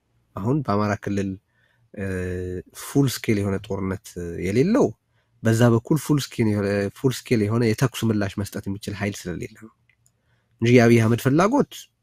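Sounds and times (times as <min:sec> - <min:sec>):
man talking: 0:00.4 - 0:01.4, 0:02.0 - 0:09.7, 0:10.6 - 0:12.0.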